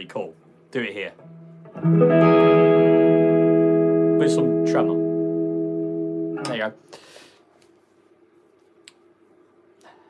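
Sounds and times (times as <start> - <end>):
low amp hum: 0.0 - 9.9
electric guitar chord ringing: 1.2 - 6.8.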